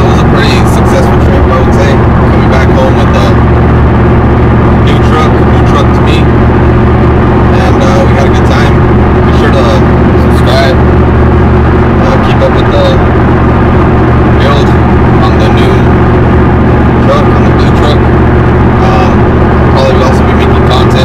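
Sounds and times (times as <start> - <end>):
man talking: 0.0 - 3.4, 4.8 - 6.3, 7.5 - 10.8, 12.0 - 13.1, 14.4 - 16.0, 17.0 - 18.0, 18.8 - 21.0
road noise: 0.0 - 21.0
truck engine drone: 0.0 - 21.0.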